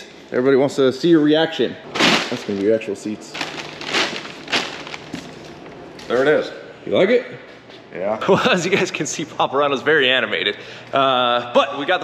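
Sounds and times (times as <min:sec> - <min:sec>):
plastic wrapping crinkling: 0:01.9 - 0:06.2.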